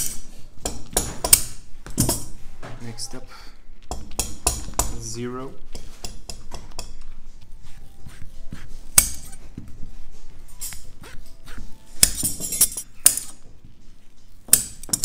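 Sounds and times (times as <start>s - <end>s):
faint background music: 0.0s - 15.0s.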